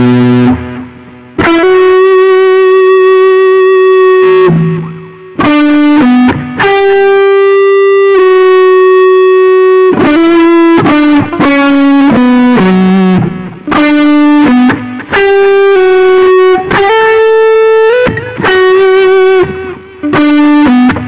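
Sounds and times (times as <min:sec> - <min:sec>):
distorted electric guitar melody: 0:00.0 - 0:21.0.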